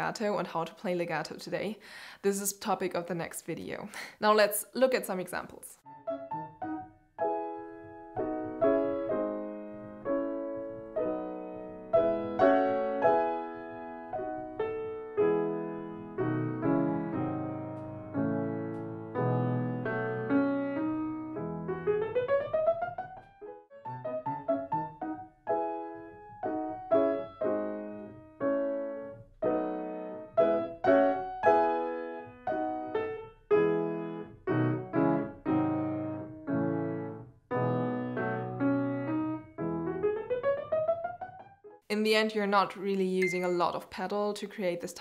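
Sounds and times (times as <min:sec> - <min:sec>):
grand piano classical passage: 0:05.8 - 0:41.8.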